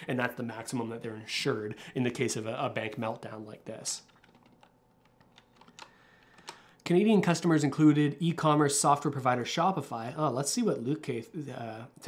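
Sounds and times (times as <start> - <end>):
faint keyboard clicks: 4.0 - 6.7.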